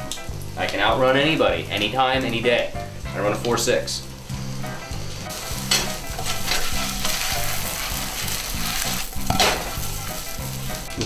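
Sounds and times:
food sizzling in a skillet: 0:00.0 - 0:10.9
spatula stirring in pan: 0:05.2 - 0:10.9.

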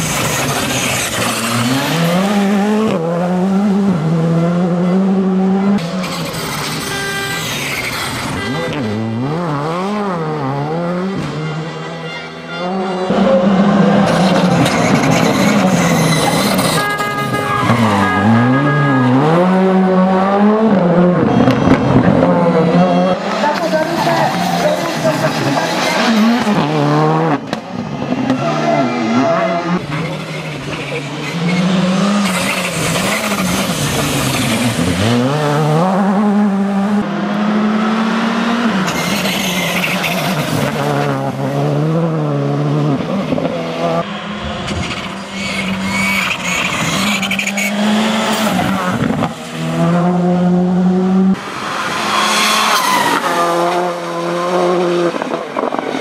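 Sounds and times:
rally car engine revving: 0:00.0 - 0:56.0.

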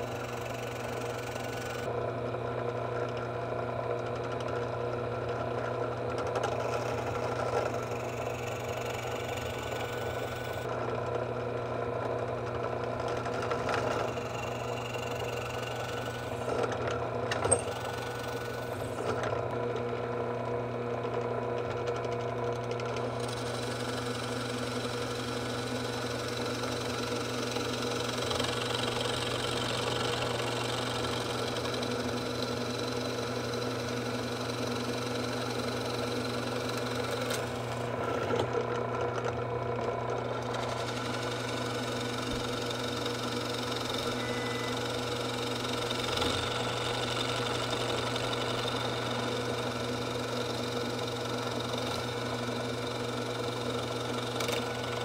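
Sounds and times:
drill press boring into wood: 0:00.0 - 0:01.9, 0:03.1 - 0:20.1, 0:21.2 - 0:55.0.

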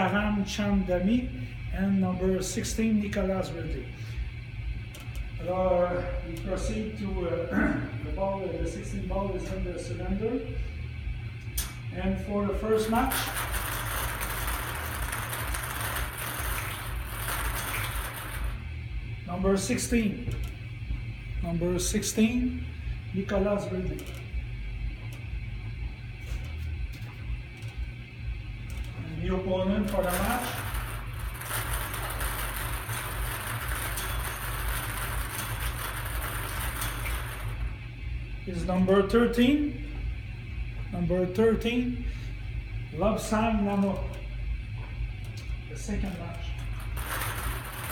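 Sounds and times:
balls rattling in wire bingo cage: 0:13.0 - 0:18.6, 0:29.9 - 0:37.7, 0:46.6 - 0:47.9.

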